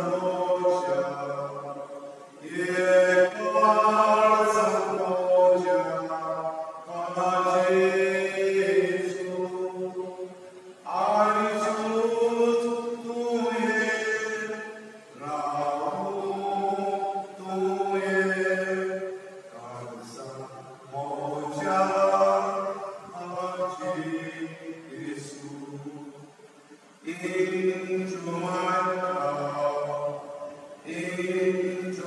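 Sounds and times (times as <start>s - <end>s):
liturgical chant singing: 0.0s - 32.0s.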